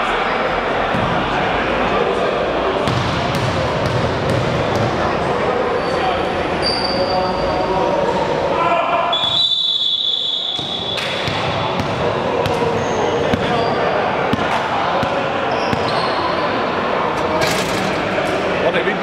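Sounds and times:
indistinct chatter in a gym: 0:00.0 - 0:19.0
referee's whistle blast: 0:09.1 - 0:11.0
sneaker squeaks on hardwood: 0:15.5 - 0:16.4.

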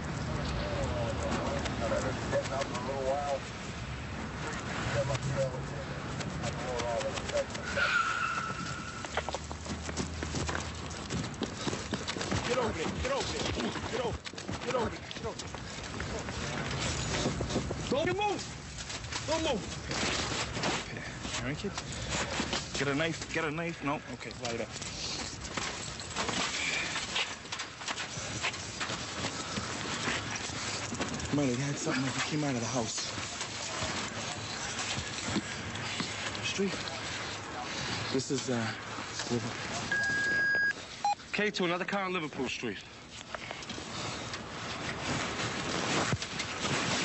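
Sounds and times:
footsteps hurrying on pavement: 0:05.8 - 0:39.9
clothing and gear rustling: 0:08.4 - 0:41.1, 0:43.0 - 0:47.0.

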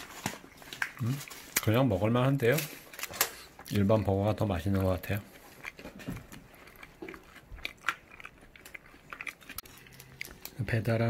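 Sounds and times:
person chewing food: 0:00.0 - 0:10.6.

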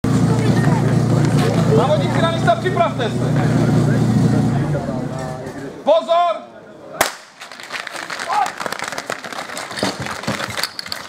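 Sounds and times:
faint crowd voices: 0:00.0 - 0:10.8.

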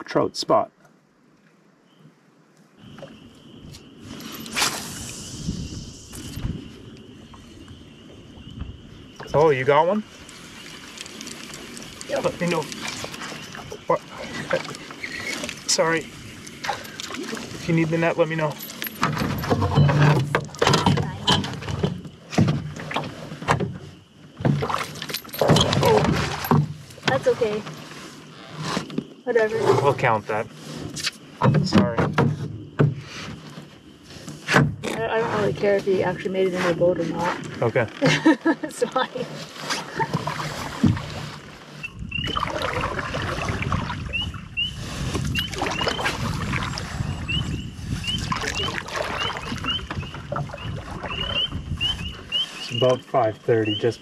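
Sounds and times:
knocks in aluminium canoe: 0:18.6 - 0:27.9, 0:30.7 - 0:36.0, 0:39.2 - 0:44.4, 0:45.0 - 0:53.0
knocks against aluminum canoe: 0:19.0 - 0:23.8, 0:31.4 - 0:33.3.

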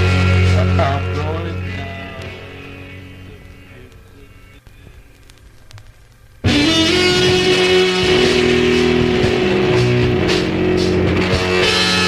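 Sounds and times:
heavy psychedelic rock band: 0:00.0 - 0:04.4, 0:06.4 - 0:12.0
distorted electric guitar: 0:00.0 - 0:12.0.

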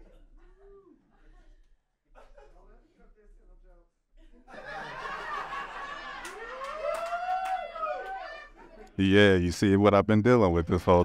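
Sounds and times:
audience laughter: 0:04.4 - 0:06.5
sharp claps: 0:06.2 - 0:07.6.

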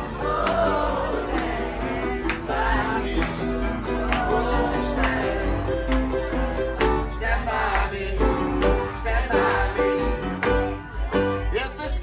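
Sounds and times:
upright piano playing: 0:00.0 - 0:12.0
man singing: 0:11.4 - 0:12.0.

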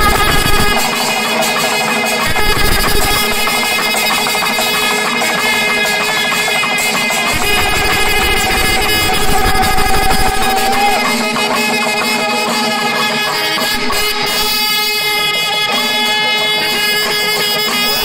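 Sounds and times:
drums: 0:00.0 - 0:18.0
wind instruments holding long notes: 0:00.0 - 0:18.0.

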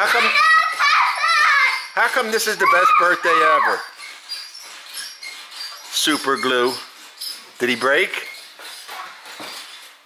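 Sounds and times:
rocking horse springs squeaking: 0:00.0 - 0:10.0.

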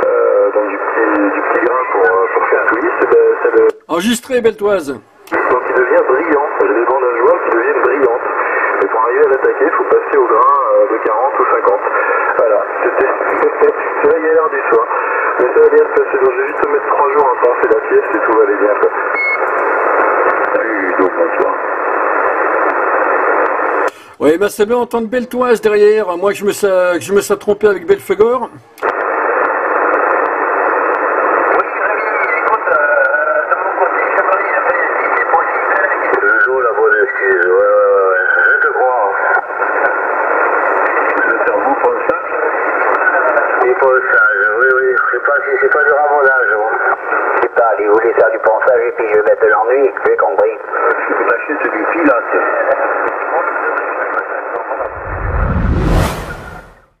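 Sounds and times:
radio static hiss: 0:00.0 - 0:19.1, 0:19.7 - 0:24.6, 0:28.0 - 0:37.7
rising whoosh with rumble: 0:54.8 - 0:57.0.

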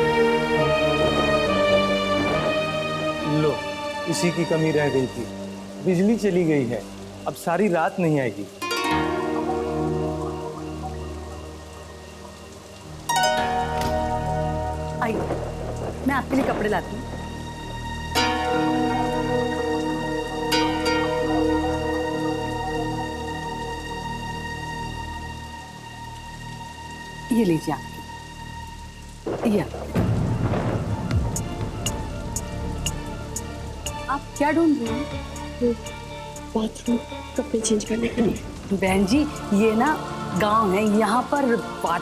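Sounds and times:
chiming sustained chords: 0:00.0 - 0:15.8, 0:17.5 - 0:27.3
rain hiss: 0:00.0 - 0:42.0
low steady drone: 0:09.0 - 0:42.0
thunderclap rolling rumble: 0:13.8 - 0:20.2, 0:29.2 - 0:35.6.

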